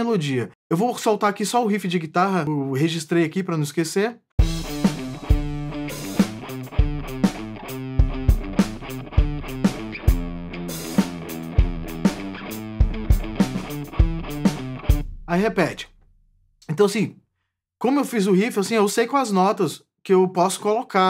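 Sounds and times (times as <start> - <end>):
guitar riff: 4.4 - 15.8
beat of low thumps and hits: 8.0 - 10.5, 12.8 - 16.1.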